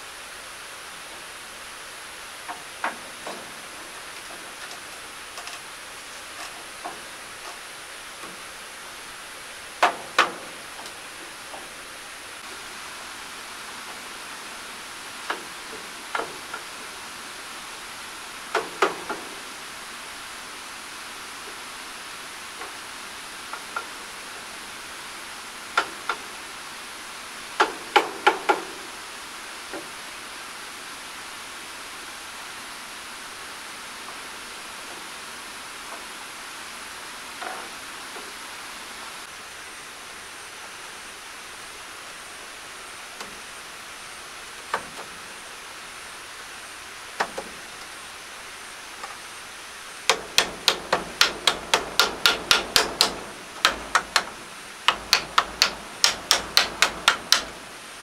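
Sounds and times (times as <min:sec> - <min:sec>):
hammer striking nails into wood: 0:09.8 - 0:10.9, 0:18.5 - 0:19.2, 0:27.6 - 0:28.7, 0:50.1 - 0:57.6.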